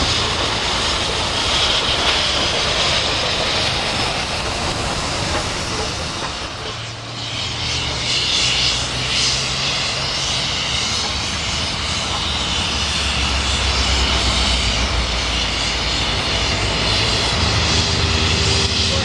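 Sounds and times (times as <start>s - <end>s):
road traffic passing: 0.0s - 19.0s
steam locomotive exhaust roar: 0.0s - 19.0s.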